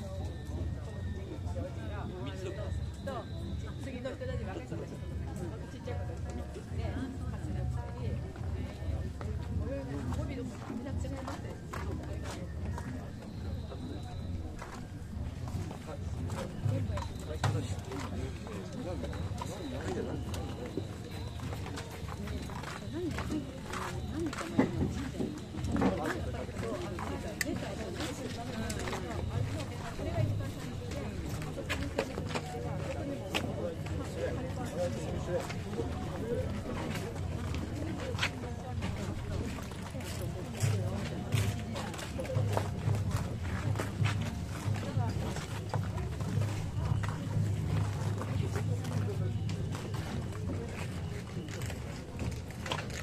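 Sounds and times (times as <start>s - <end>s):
crowd murmur: 0.0s - 53.0s
festival drums beating: 15.2s - 35.2s, 38.9s - 51.4s.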